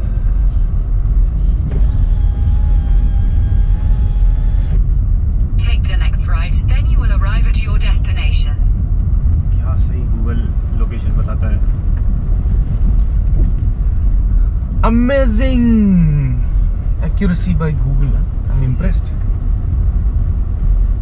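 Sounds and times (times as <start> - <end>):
car engine and tyres rumbling: 0.0 - 21.0
person speaking: 14.8 - 19.0.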